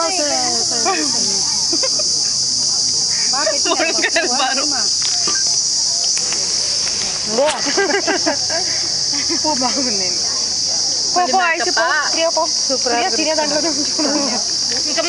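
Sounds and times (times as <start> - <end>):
insects buzzing: 0.0 - 15.0
people's voices: 0.0 - 15.0.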